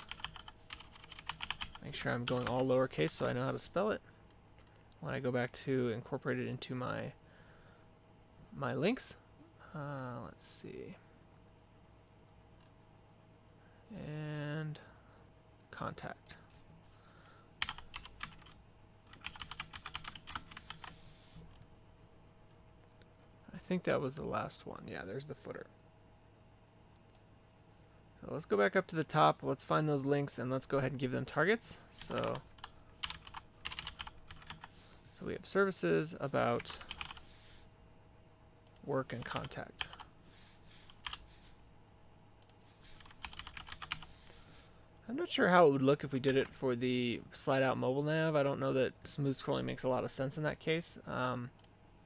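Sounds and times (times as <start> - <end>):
computer keyboard typing: 0.0 - 2.6, 17.6 - 21.0, 32.0 - 34.7, 36.6 - 37.2, 40.9 - 41.2, 42.4 - 44.2.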